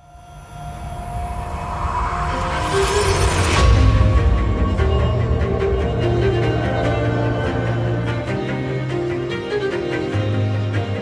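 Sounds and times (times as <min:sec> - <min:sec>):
low rumble riser: 0:00.0 - 0:10.0.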